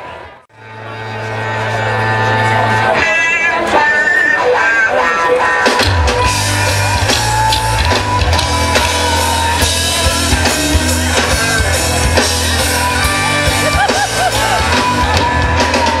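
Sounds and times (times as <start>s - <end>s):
electric guitar: 0.6s - 16.0s
live blues-rock band: 0.7s - 16.0s
bass and drums: 0.8s - 16.0s.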